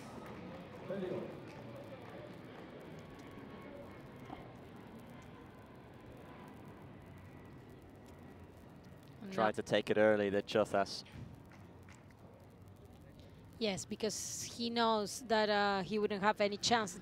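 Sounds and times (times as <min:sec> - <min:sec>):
faint court ambience: 0:00.0 - 0:17.0.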